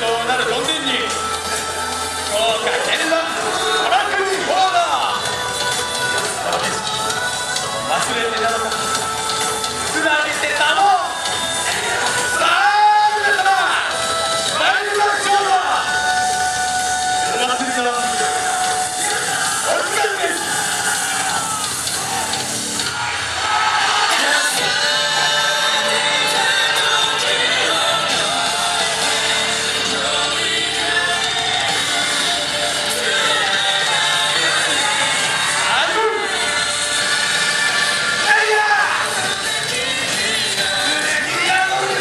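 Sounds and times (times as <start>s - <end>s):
dance music over loudspeakers: 0.0s - 42.0s
voices calling out: 0.0s - 42.0s.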